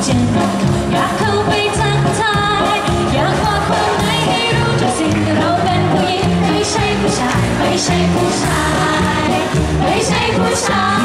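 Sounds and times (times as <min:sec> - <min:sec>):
people singing into microphones: 0:00.9 - 0:11.0.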